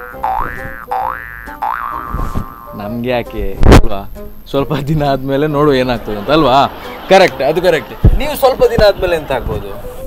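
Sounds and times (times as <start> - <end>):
comic boing sound effect: 0.0 - 2.8.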